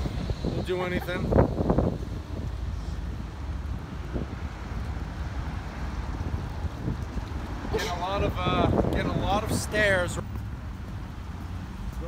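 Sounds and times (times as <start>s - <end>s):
street traffic: 0.0s - 12.0s
wind rumbling on microphone: 0.0s - 12.0s.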